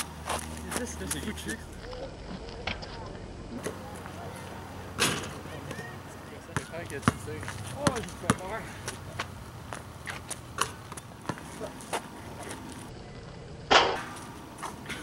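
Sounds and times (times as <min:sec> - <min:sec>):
basketball bouncing on asphalt: 0:06.5 - 0:12.1
ball hitting the rim: 0:06.6 - 0:08.5.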